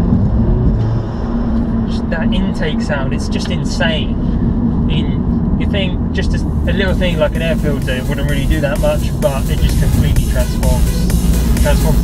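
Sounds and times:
car engine running: 0.0s - 12.0s.

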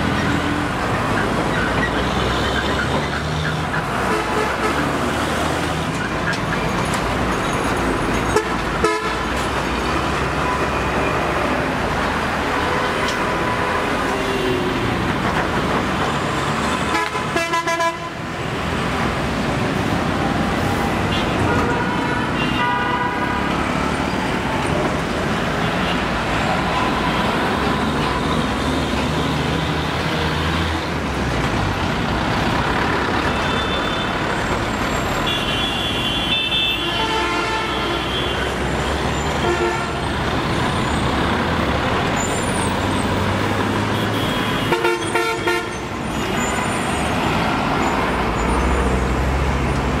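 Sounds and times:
road traffic passing: 0.0s - 50.0s
vehicle horns honking: 8.3s - 9.3s, 16.8s - 18.2s, 21.1s - 23.5s, 33.3s - 34.1s, 35.2s - 38.6s, 39.3s - 40.0s, 43.8s - 46.5s.

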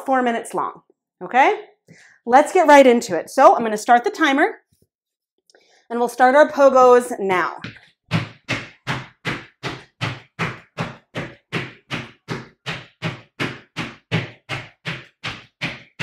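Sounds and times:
feet thudding on bare floor: 7.6s - 16.0s.

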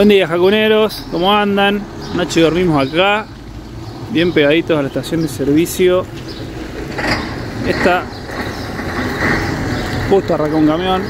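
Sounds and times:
truck diesel engine rumbling: 0.0s - 11.0s.

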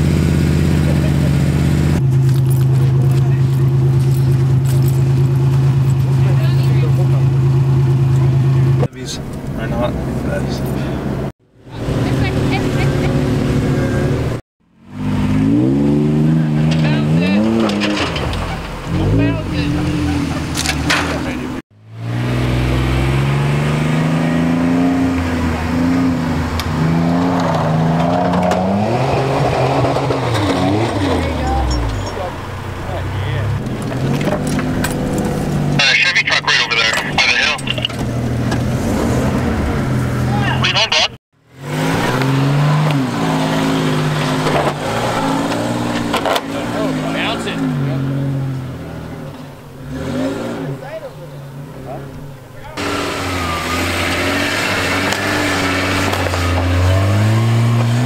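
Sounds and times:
truck engines revving: 0.0s - 58.0s
crackling noise: 35.7s - 38.0s, 40.6s - 41.2s.

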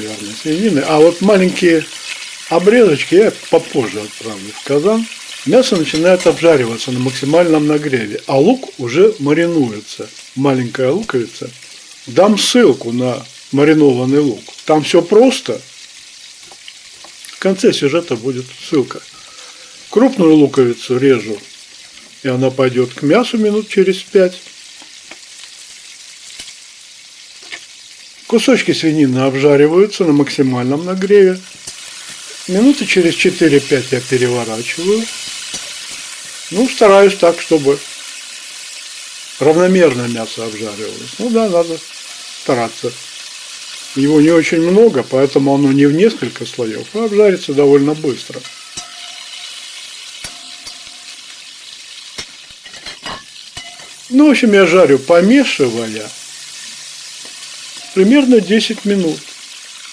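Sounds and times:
pork sizzling in a pot: 0.0s - 59.9s
metal spoon scraping a pot: 48.4s - 51.4s, 52.2s - 54.0s.

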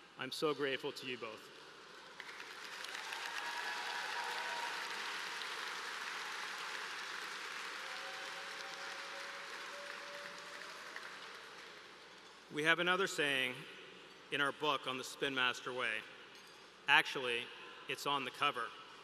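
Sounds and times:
audience applause: 2.0s - 12.2s.

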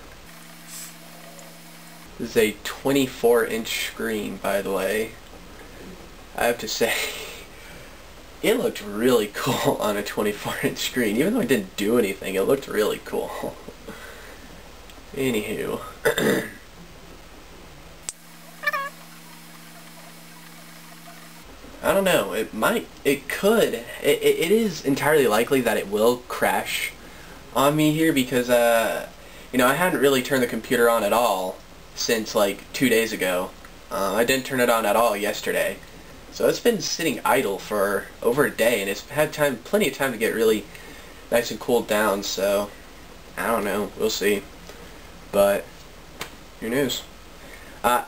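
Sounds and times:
low hum of even tones: 0.0s - 9.8s, 11.6s - 24.8s
faint hiss: 0.0s - 16.7s
steady low hum: 0.0s - 48.0s
speech: 2.2s - 5.2s, 6.4s - 7.5s, 8.4s - 13.6s, 15.1s - 16.5s, 21.8s - 40.7s, 41.3s - 42.8s, 43.4s - 44.5s, 45.3s - 45.7s, 46.6s - 47.1s
short high-pitched call: 18.6s - 19.1s.

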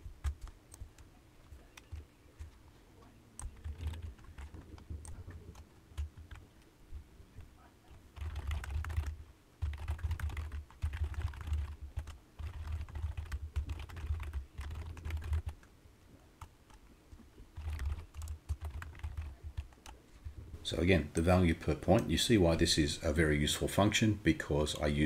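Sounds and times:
typing on a computer keyboard: 0.1s - 2.6s, 3.4s - 6.5s, 8.1s - 15.7s, 17.5s - 20.0s.

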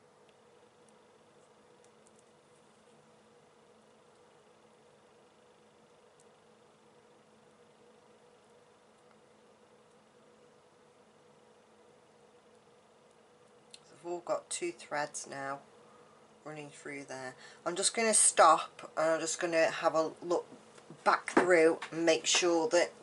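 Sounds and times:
faint room hiss: 0.0s - 23.0s
tiny ticks: 0.2s - 2.4s, 12.5s - 13.9s.

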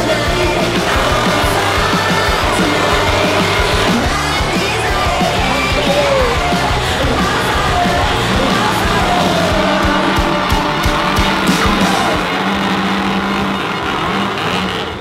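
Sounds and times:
background music: 0.0s - 15.0s
chainsaws revving: 0.0s - 15.0s
loud crowd: 0.0s - 15.0s.

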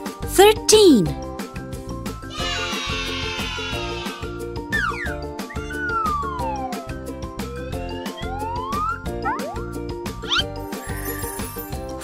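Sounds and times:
upbeat children's music: 0.1s - 1.2s.

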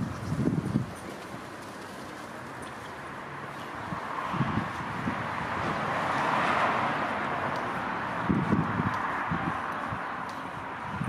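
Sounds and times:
car passing: 1.0s - 11.0s.

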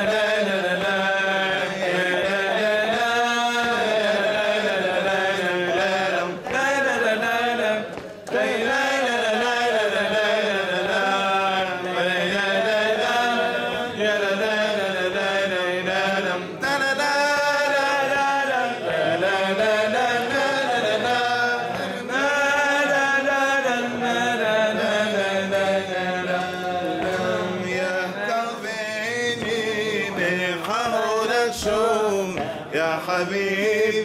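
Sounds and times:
man singing unaccompanied: 0.0s - 34.0s.

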